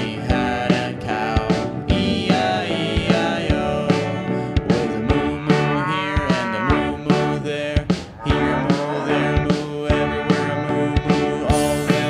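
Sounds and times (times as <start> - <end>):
children's song backing: 0.0 - 12.0
cow mooing: 5.5 - 7.0, 8.2 - 11.0.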